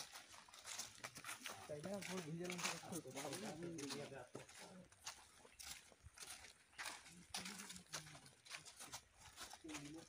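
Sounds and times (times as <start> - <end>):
footsteps on dry leaves: 0.0 - 10.0
men talking: 1.5 - 4.9.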